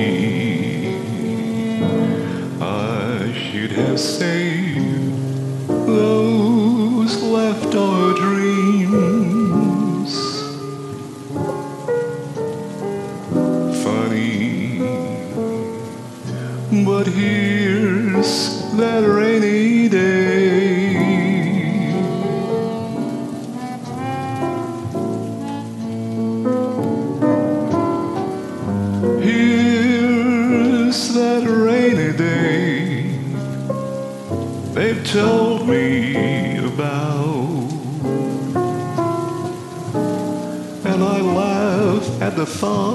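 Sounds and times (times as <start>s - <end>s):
person singing: 0.0s - 11.8s, 13.1s - 33.7s, 34.6s - 42.9s
rain hissing: 0.0s - 42.9s.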